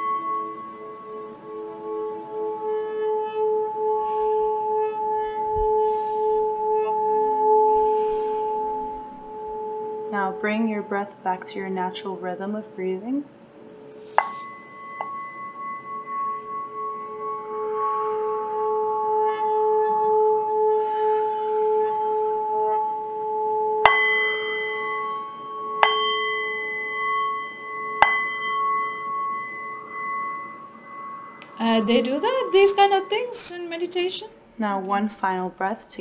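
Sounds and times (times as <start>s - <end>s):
singing bowl struck with mallet: 0.0s - 2.8s, 14.1s - 23.0s, 23.7s - 34.0s
singing bowl ringing tone: 0.0s - 34.8s.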